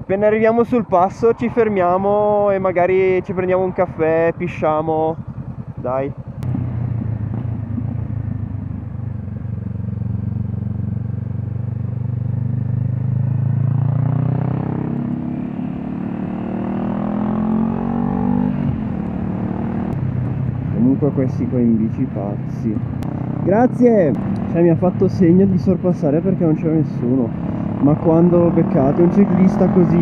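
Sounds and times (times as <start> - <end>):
motorcycle engine accelerating: 0.6 - 30.0.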